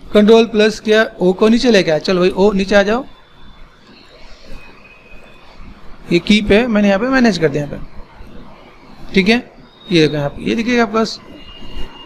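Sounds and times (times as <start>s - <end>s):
thin high tone: 9.2s - 12.0s.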